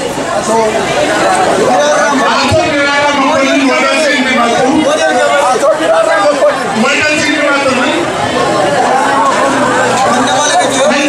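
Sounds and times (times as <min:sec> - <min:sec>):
crowd chatter: 0:00.0 - 0:11.0
man speaking into a microphone: 0:01.6 - 0:08.2, 0:10.0 - 0:11.0.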